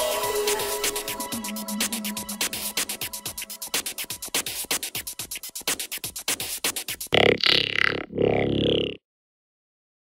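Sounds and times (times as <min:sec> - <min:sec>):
low distorted synth tones: 0:07.2 - 0:09.0.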